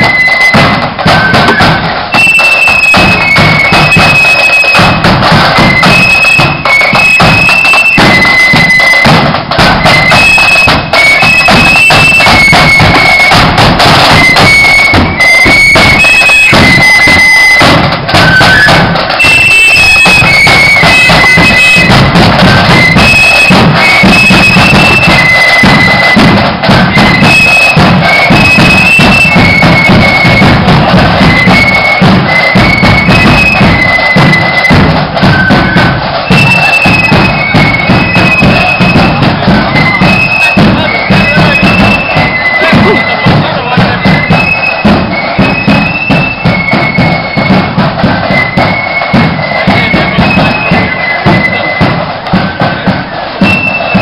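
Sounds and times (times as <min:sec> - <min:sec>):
flutes playing a melody: 0:00.0 - 0:54.0
steady drum beat: 0:00.0 - 0:54.0.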